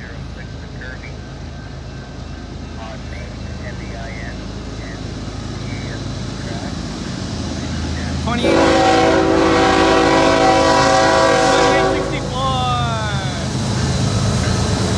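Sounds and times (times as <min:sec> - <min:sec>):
diesel locomotives rumbling: 0:00.0 - 0:14.9.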